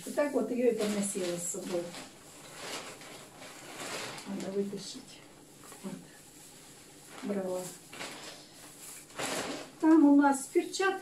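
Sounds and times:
bag and fabric rustling: 0:00.0 - 0:11.0.

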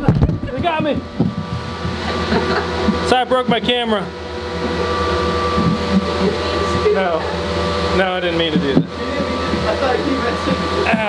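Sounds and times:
cooling fans whirring: 0:00.0 - 0:11.0
faint steady whine: 0:00.0 - 0:11.0.

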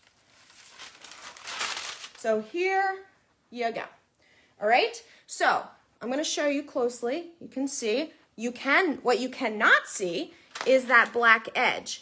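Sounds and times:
vinyl backing sheet crinkling: 0:00.0 - 0:02.5, 0:10.5 - 0:11.3.

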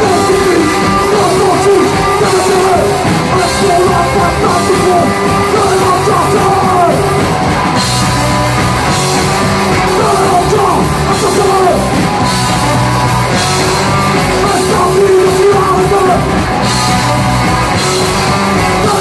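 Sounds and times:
bass guitar: 0:00.0 - 0:19.0
electric guitar: 0:00.0 - 0:19.0
shouted lead vocals: 0:00.0 - 0:19.0.

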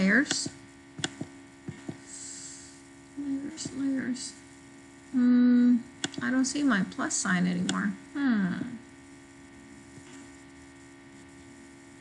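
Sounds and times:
electrical mains hum: 0:00.0 - 0:12.0
computer mouse clicks: 0:00.2 - 0:02.0, 0:06.0 - 0:06.3.

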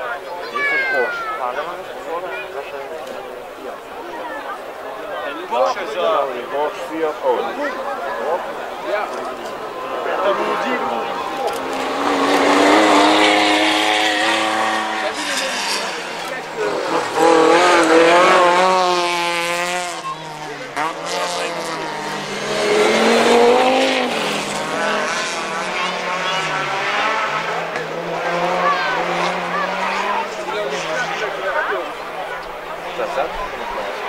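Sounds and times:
rally car engines revving: 0:00.0 - 0:34.0.

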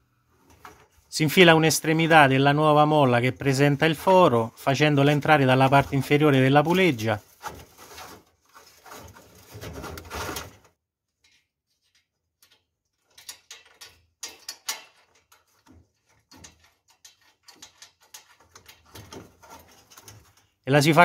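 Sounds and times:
steel spring scraping and clicking: 0:12.4 - 0:20.6.

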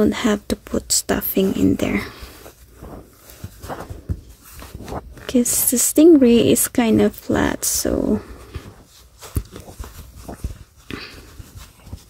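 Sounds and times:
rustling of yarn and stuffing: 0:00.0 - 0:12.0.

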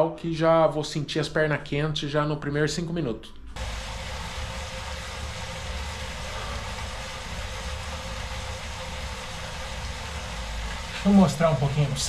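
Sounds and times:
bike trainer whirring: 0:03.6 - 0:12.0.

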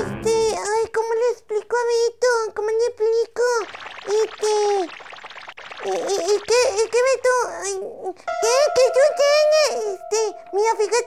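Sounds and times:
high-pitched puppet voice: 0:00.0 - 0:04.9, 0:05.8 - 0:11.0.

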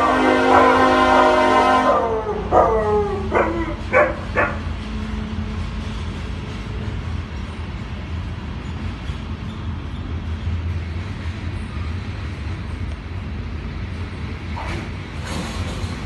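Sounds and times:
freight train rumble: 0:00.0 - 0:16.0
dog barking: 0:02.5 - 0:04.6.

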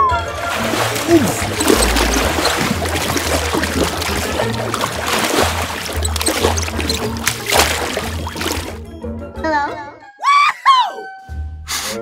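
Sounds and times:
background music: 0:00.0 - 0:12.0
splash: 0:00.3 - 0:08.8
voice-like squeaks: 0:01.0 - 0:04.6, 0:05.7 - 0:08.6.

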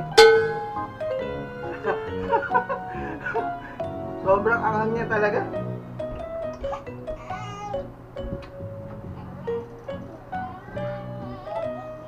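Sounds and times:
background music with held notes: 0:00.0 - 0:12.0
toddler squealing: 0:06.6 - 0:07.9.

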